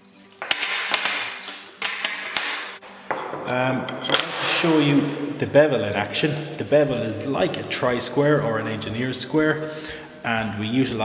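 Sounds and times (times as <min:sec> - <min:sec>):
metal scraping and rattling: 0:00.4 - 0:05.5.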